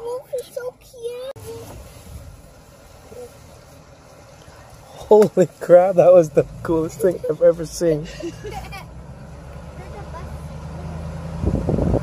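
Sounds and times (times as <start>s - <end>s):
pickup truck hum from inside cab: 0.0s - 12.0s
person laughing: 7.0s - 8.9s
wind rushing on microphone: 11.3s - 12.0s.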